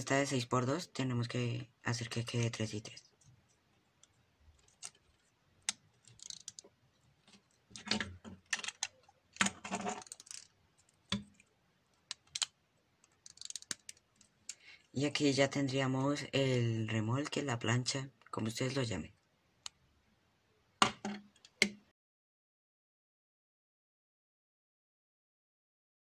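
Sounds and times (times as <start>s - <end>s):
plastic bricks clicking and rattling: 4.6s - 11.4s, 12.1s - 14.1s.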